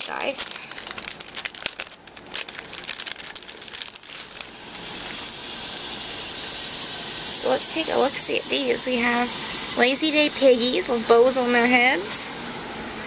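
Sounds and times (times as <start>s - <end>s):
cellophane bag crinkling: 0.0s - 6.0s
steady hiss: 3.1s - 13.0s.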